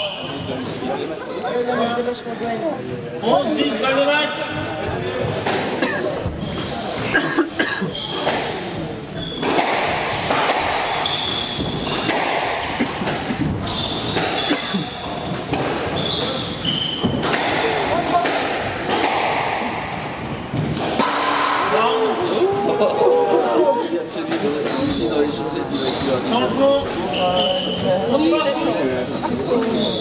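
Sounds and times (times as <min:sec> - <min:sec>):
shoes squeaking on wooden floor: 0:00.0 - 0:03.0, 0:04.5 - 0:05.5, 0:06.1 - 0:07.2, 0:07.8 - 0:08.4, 0:09.1 - 0:09.6, 0:10.8 - 0:17.4, 0:25.6 - 0:30.0
squash ball cracking off walls: 0:09.4 - 0:14.5.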